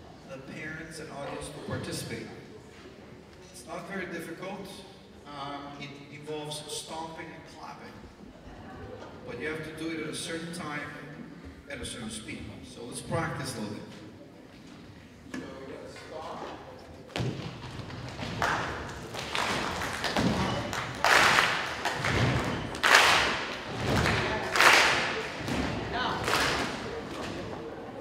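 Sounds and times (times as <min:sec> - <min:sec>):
audience foot stomps: 0:17.1 - 0:27.6
group hand claps: 0:17.8 - 0:27.5.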